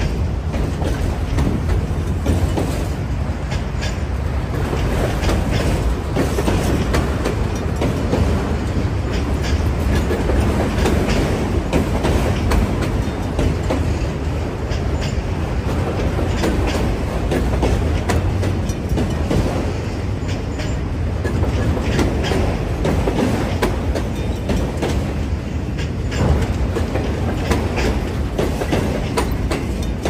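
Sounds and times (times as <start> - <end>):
train wheels rumbling on rail: 0.0 - 30.0
wheels clacking over rail joints: 0.0 - 30.0.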